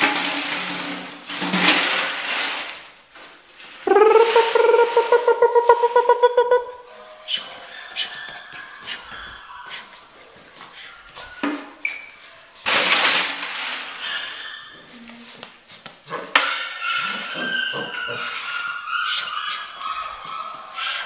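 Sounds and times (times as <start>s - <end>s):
rattling and rustling: 0.0s - 3.8s
puppy whining: 3.9s - 10.2s, 10.8s - 12.2s, 16.7s - 21.0s.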